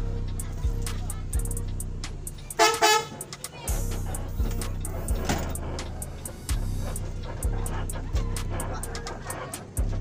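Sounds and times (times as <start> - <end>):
bus engine running: 0.0 - 10.0
music with a steady beat: 0.0 - 10.0
bus horn toots: 2.5 - 4.0.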